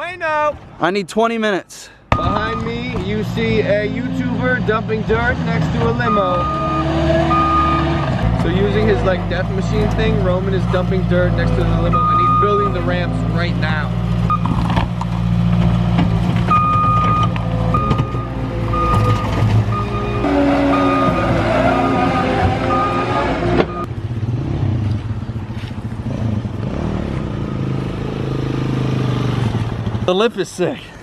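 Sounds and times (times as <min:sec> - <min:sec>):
diesel engine running: 0:02.4 - 0:28.3
reversing alarm beeping: 0:05.9 - 0:08.0, 0:11.8 - 0:12.8, 0:14.3 - 0:14.5, 0:16.5 - 0:23.9.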